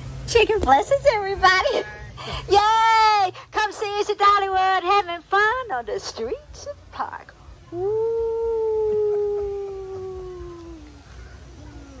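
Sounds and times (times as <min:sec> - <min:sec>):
falling whoop: 0:07.7 - 0:11.1.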